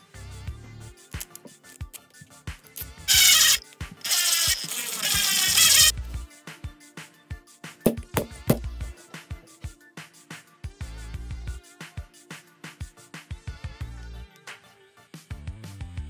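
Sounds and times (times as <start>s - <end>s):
background music with a beat: 0.2s - 16.0s
hex driver scraping rasp: 3.1s - 5.9s.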